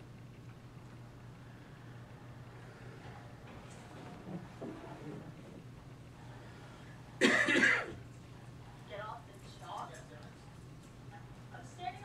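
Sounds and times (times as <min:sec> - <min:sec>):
person clearing throat: 0:07.2 - 0:08.0.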